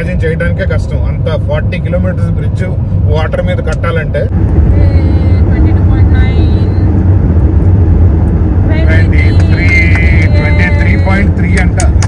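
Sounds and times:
road and tyre noise in car: 0.0 - 12.0
person talking: 8.7 - 12.0.

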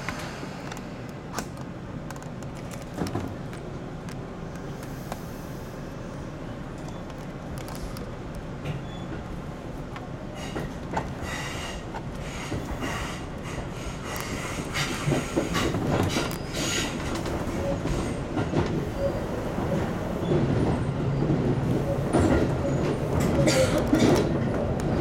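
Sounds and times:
train wheels rumbling on rail: 0.0 - 25.0
wheel clicks and squeals: 6.8 - 7.3, 14.2 - 18.2.

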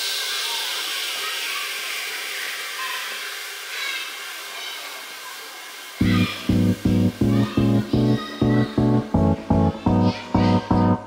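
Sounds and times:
heavy kick drum: 6.0 - 11.0
thin high synth parts: 6.0 - 11.0
white-noise sweep: 6.0 - 11.0.

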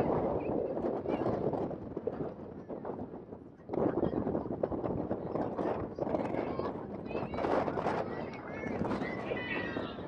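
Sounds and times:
outdoor crowd noise: 0.0 - 10.0.

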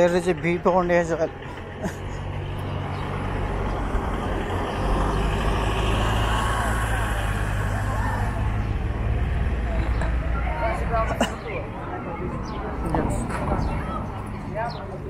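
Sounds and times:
heavy vehicle engine running: 0.0 - 15.0
road noise: 0.0 - 15.0.

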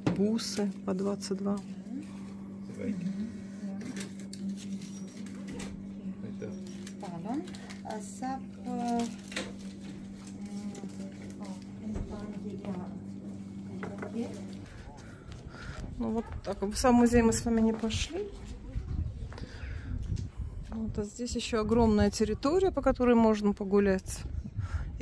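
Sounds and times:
low electrical hum: 0.0 - 25.0.

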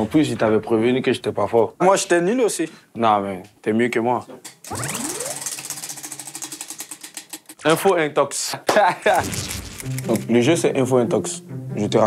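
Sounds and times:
prize wheel clicking: 4.7 - 7.7.

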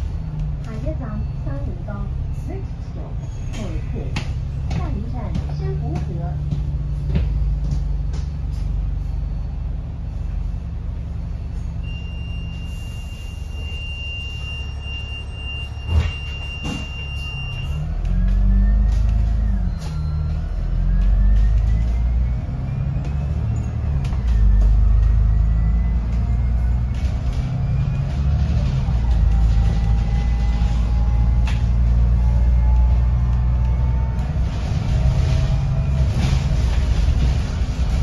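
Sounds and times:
bus engine drone: 0.0 - 38.0
rising gear whine: 6.8 - 38.0.

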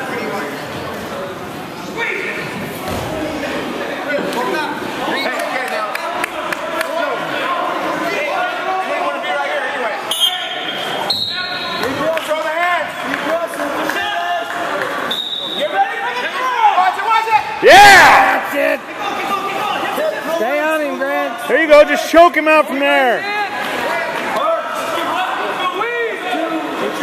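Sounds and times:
spectators shouting and talking: 0.0 - 27.0.

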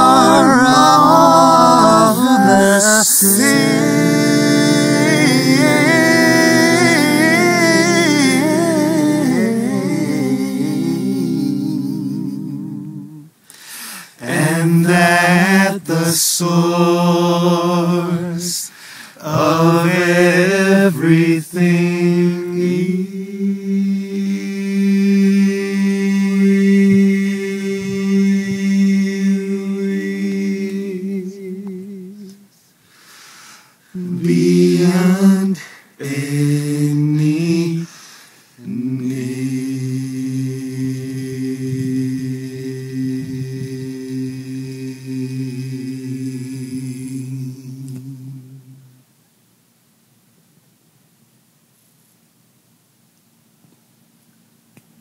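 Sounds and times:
male voices holding a sustained note: 0.0 - 13.3, 14.2 - 32.3.

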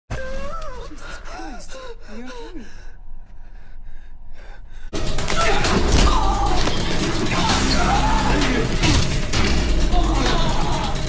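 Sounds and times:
loud film music: 4.9 - 11.0.

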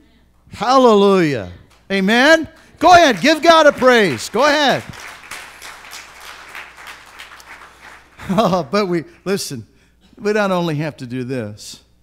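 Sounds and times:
crowd applauding: 1.7 - 9.0.

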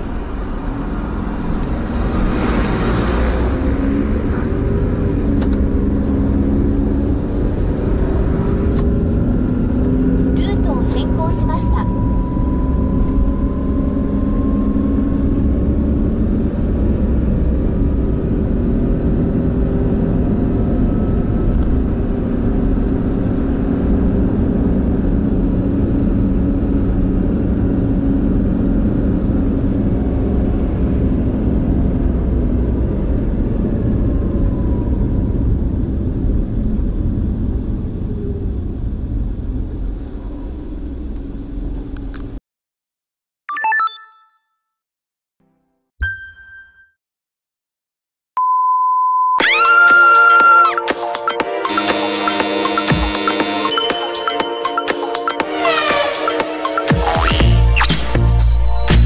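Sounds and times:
engine and tyre rumble: 0.0 - 42.4
faint rising whine: 11.6 - 22.2.

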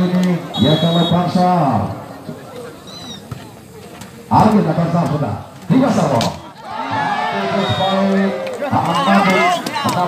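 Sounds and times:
crowd shouting and cheering: 6.0 - 10.0.

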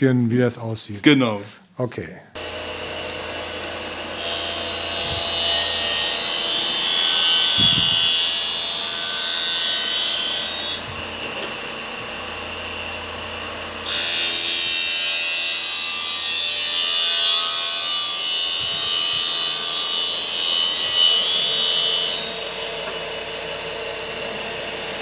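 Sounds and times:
motor hum: 2.4 - 6.3
grinding wheel on steel: 2.4 - 22.9.

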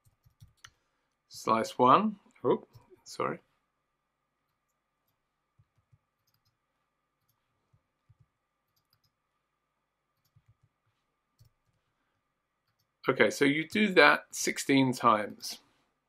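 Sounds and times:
computer mouse and keyboard clicks: 0.0 - 0.8, 8.1 - 9.2.

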